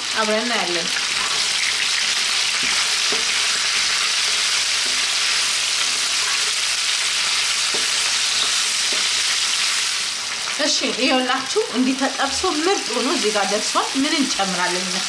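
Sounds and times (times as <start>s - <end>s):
food sizzling in a frying pan: 0.0s - 15.0s.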